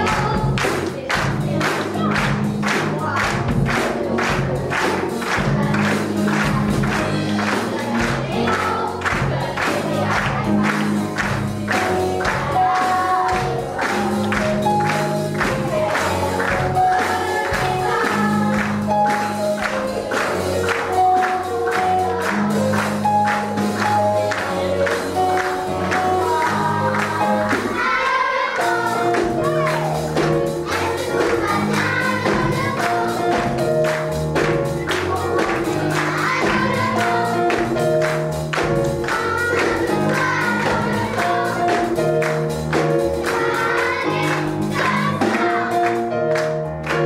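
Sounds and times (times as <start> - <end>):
voices singing: 0.0 - 42.3, 42.9 - 46.3
instrumental accompaniment: 0.0 - 47.0
live band playing: 0.0 - 47.0.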